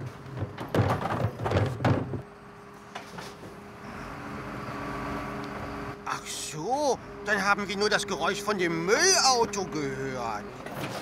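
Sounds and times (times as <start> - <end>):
garbage truck loader clatter: 0.0 - 4.1, 9.3 - 11.0
truck mechanical hum: 0.0 - 11.0.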